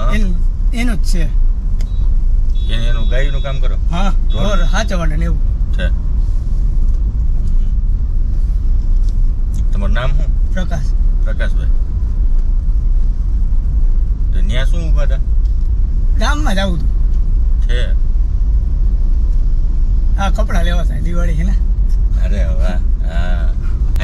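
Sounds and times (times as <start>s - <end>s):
men talking: 0.0s - 1.4s, 2.6s - 6.0s, 9.6s - 11.8s, 14.2s - 15.3s, 16.1s - 18.0s, 20.1s - 24.0s
car driving rumble: 0.0s - 24.0s.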